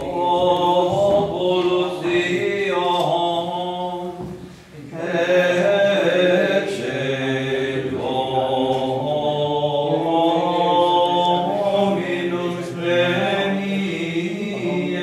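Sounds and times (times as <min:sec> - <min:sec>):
plainchant singing: 0:00.0 - 0:15.0.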